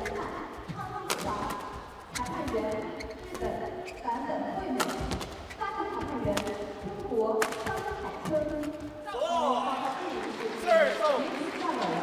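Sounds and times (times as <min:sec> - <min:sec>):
shoes squeaking on court floor: 0:00.0 - 0:09.0
rackets hitting shuttlecock: 0:01.0 - 0:01.6, 0:04.8 - 0:05.4, 0:07.4 - 0:08.8.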